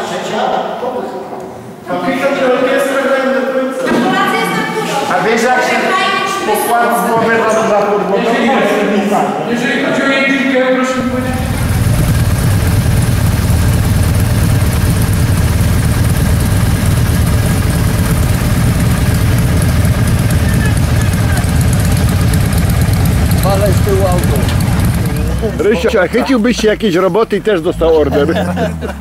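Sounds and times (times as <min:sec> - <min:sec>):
motorcycle engines rumbling: 0:10.9 - 0:29.0.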